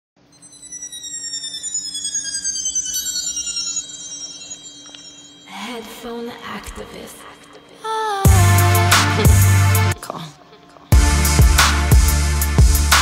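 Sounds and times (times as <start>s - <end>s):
shimmering chime tones: 0.3s - 7.7s
music with voice: 0.6s - 13.0s.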